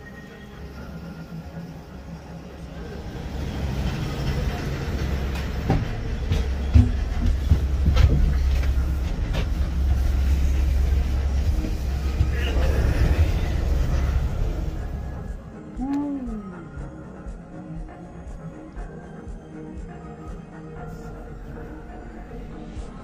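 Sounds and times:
cable car low rumble: 0:00.0 - 0:23.0
cable car clacking over rollers: 0:02.5 - 0:15.2.

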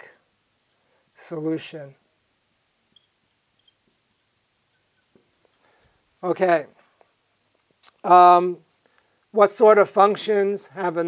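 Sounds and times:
marker squeaking on glass: 0:03.0 - 0:05.2.

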